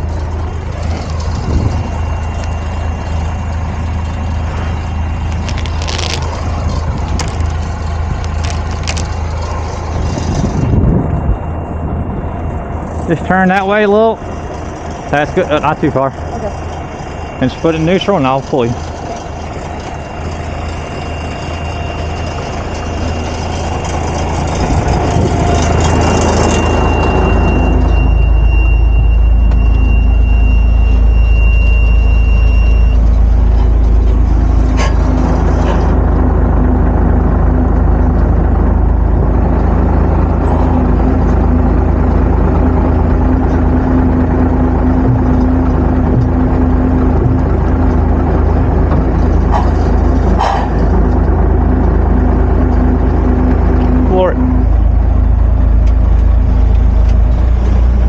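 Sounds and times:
diesel truck engine idling: 0.0 - 58.0.

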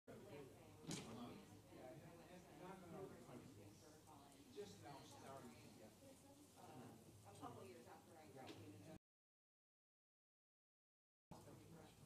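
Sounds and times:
faint chatter of people talking: 0.1 - 9.0, 11.3 - 12.0.

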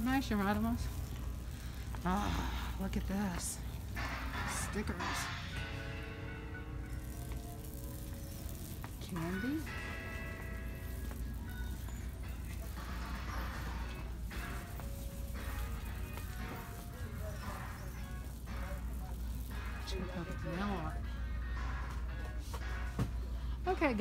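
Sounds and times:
voices: 0.0 - 22.5
steady low hum: 0.0 - 24.0
background music over speakers: 3.3 - 24.0.

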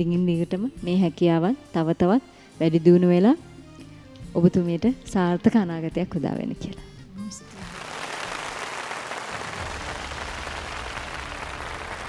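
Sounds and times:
background music: 0.0 - 12.0
studio audience applauding: 7.4 - 12.0.

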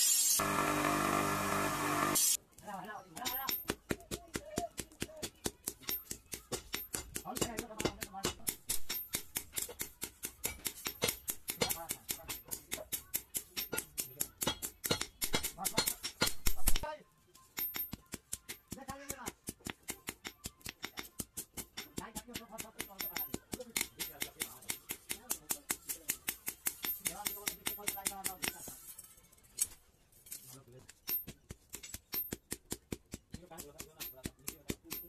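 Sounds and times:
hammer striking metal on anvil: 5.6 - 16.6.

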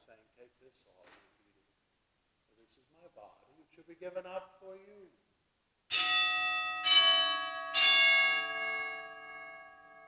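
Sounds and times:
altar bell ringing: 5.9 - 10.0.

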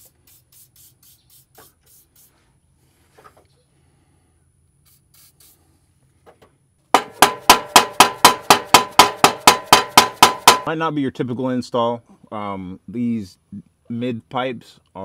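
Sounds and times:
aerosol can spraying: 0.0 - 2.4, 4.8 - 5.6
hammer blows on metal pipe: 7.0 - 10.7.

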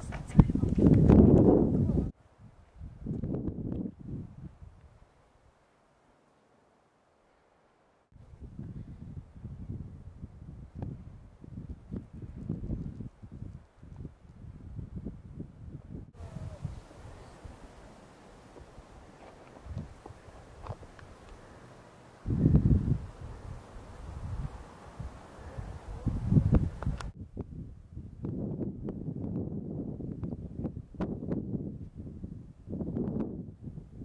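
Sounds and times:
wind rumbling on microphone: 0.0 - 5.2, 8.1 - 34.0.

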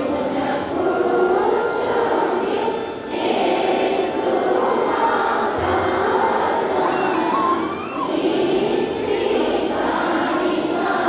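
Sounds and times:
congregation voices: 0.0 - 11.0.

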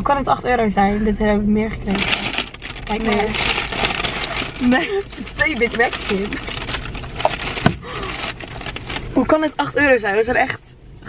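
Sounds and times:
paper bag rustling: 1.8 - 9.4.

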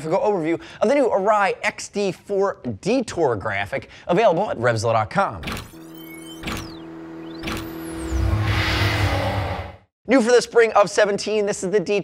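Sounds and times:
sharp hits: 6.4 - 9.9
steady low tone: 6.6 - 9.8
high whooshing sweeps: 6.8 - 9.9.

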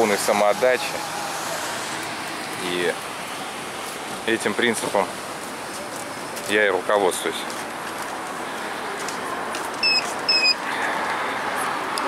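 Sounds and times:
outdoor background noise: 0.0 - 12.0
short high-pitched beeps: 9.8 - 10.6.

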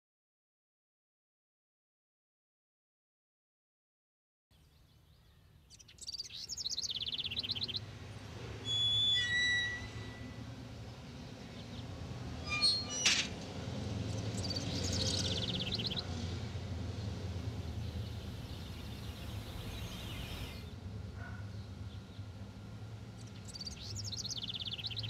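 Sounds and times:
small birds chirping and trilling: 4.6 - 7.9, 14.0 - 16.3, 17.0 - 20.7, 23.2 - 25.0
whistled bird notes: 8.7 - 10.4
steady low hum: 13.8 - 24.2.

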